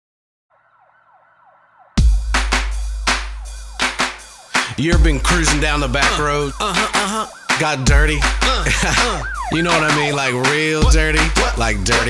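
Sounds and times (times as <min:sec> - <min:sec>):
siren wailing: 0:00.5 - 0:11.9
song with heavy bass hit: 0:02.0 - 0:12.0.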